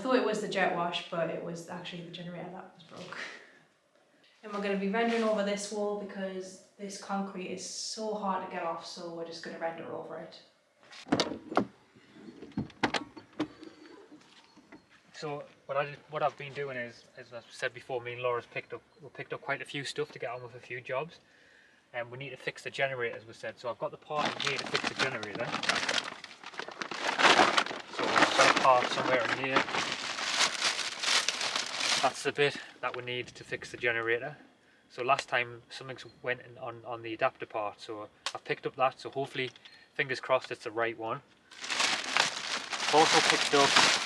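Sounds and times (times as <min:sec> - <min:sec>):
plastic bag crinkling: 0:24.1 - 0:32.6, 0:41.5 - 0:44.0.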